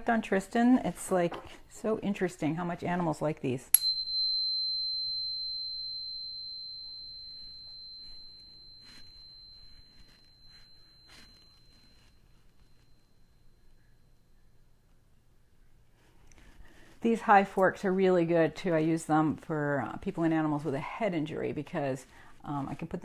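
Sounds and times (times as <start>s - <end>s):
tuning fork ringing: 3.7s - 15.0s.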